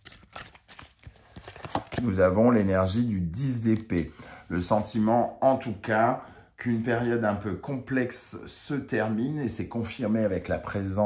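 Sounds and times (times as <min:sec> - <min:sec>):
cards being shuffled: 0:00.0 - 0:02.4.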